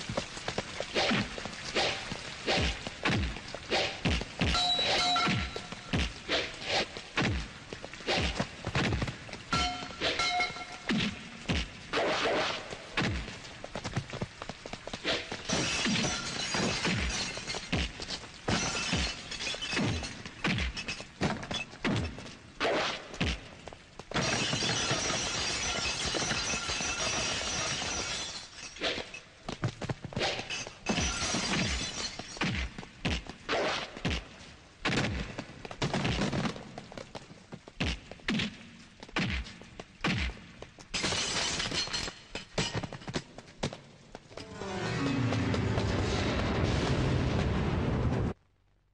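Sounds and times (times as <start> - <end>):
glass breaking: 4.5 - 6.0, 9.5 - 11.1, 15.4 - 21.8, 24.1 - 29.2, 30.3 - 32.9, 40.9 - 43.0
glass bottles smashing: 4.6 - 6.0, 9.5 - 10.9, 15.5 - 21.7, 24.2 - 29.2, 30.4 - 32.6, 41.0 - 43.0.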